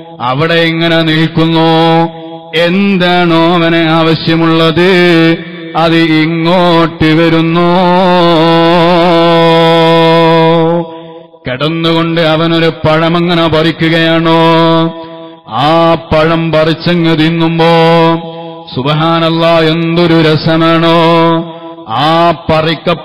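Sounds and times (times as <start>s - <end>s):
man chanting: 0.0s - 23.0s.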